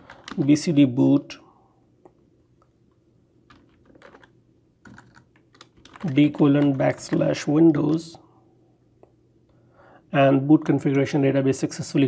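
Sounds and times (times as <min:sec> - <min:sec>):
typing on a keyboard: 0:00.0 - 0:00.4, 0:03.5 - 0:07.4.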